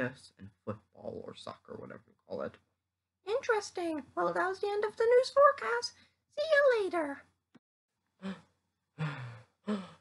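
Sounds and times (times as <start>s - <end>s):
person breathing out of breath: 8.2s - 10.0s.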